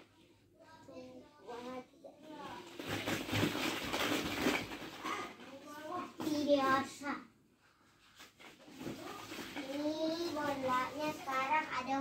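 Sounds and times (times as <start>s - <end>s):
young child talking: 0.6s - 2.8s, 5.0s - 7.4s, 9.0s - 12.0s
plastic balls rustling and clattering: 1.4s - 7.1s, 7.9s - 12.0s.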